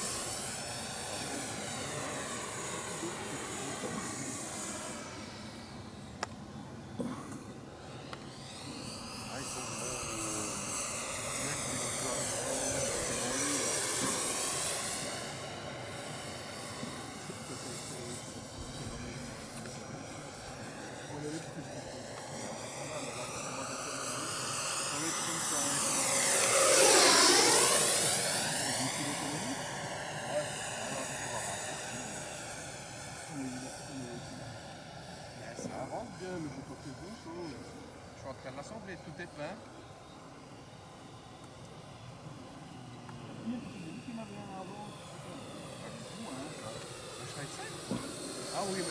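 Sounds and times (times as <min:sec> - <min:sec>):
model jet fan whining: 0:00.0 - 0:48.9.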